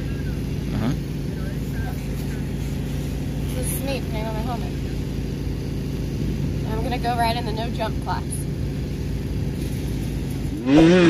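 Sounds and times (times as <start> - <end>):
faint voices: 0.0 - 5.2
steady engine drone: 0.0 - 11.0.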